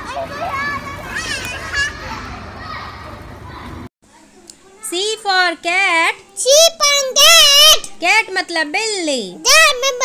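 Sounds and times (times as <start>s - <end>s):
young child's high voice: 0.0s - 5.0s, 6.2s - 8.1s, 9.4s - 10.0s
children playing: 0.0s - 5.2s.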